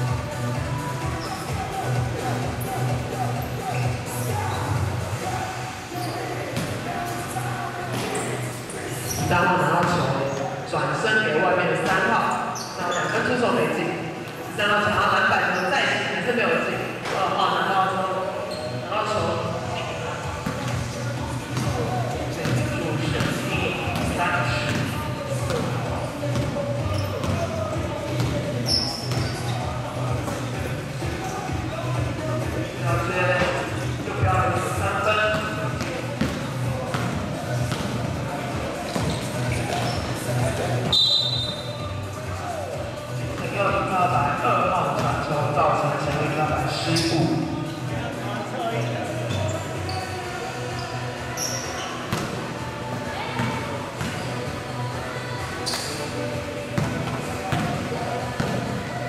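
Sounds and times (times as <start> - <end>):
players' voices: 0.0 - 59.0
basketball bouncing on gym floor: 21.5 - 27.5, 35.3 - 40.2, 56.8 - 58.8.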